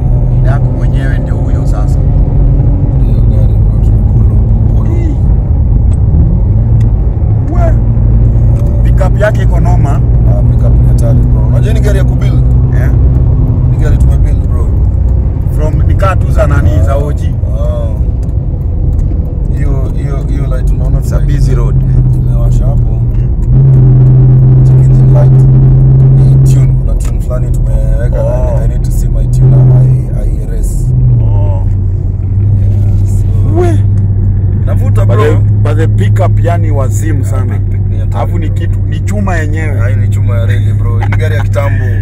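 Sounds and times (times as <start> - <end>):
car engine drone from inside: 0.0 - 42.0
road rumble: 0.0 - 42.0.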